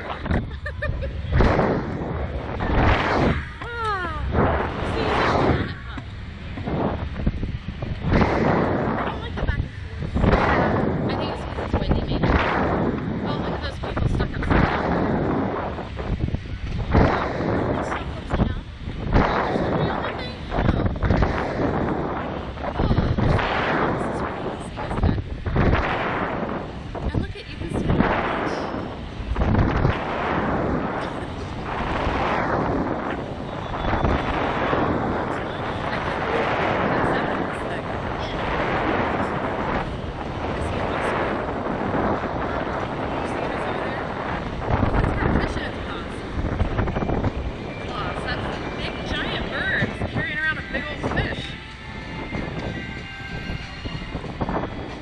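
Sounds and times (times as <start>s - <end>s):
deep rumble: 0.0s - 55.0s
wind buffeting microphone: 0.0s - 55.0s.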